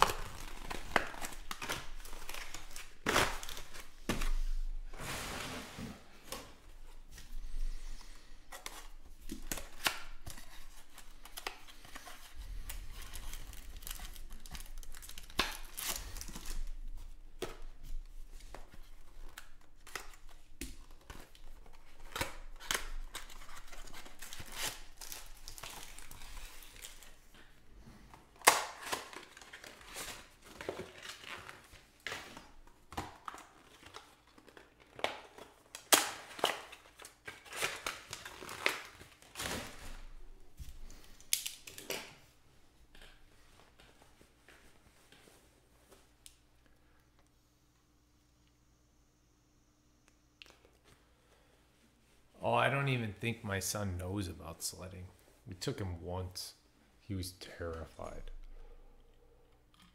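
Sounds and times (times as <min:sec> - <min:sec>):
foil packs crinkling: 0:00.0 - 0:04.1, 0:08.9 - 0:17.2, 0:18.8 - 0:27.4, 0:28.3 - 0:40.2.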